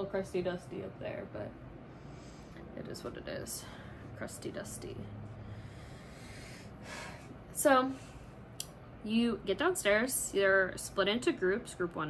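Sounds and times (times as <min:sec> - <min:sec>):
sharp intake of breath: 0:01.8 - 0:02.7, 0:05.3 - 0:07.4.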